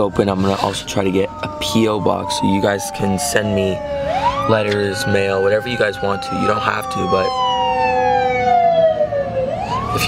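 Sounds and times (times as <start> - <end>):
emergency siren wailing: 0.0 - 10.0.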